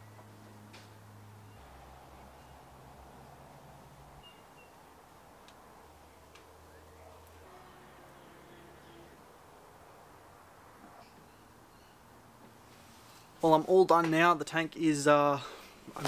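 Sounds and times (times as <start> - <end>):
faint low hum: 0.0 - 12.6.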